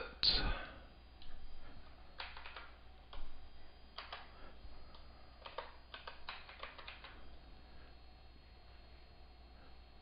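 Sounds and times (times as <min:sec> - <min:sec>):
calculator keys clicking: 0:02.2 - 0:03.2, 0:04.0 - 0:04.2, 0:05.4 - 0:07.2.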